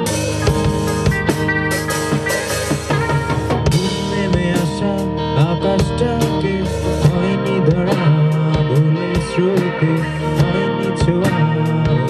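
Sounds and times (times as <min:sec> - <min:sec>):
bass guitar: 0:00.0 - 0:12.0
drum kit and cymbals: 0:00.0 - 0:12.0
guitar lead with bending notes: 0:00.0 - 0:12.0
rock band playing live: 0:00.0 - 0:12.0.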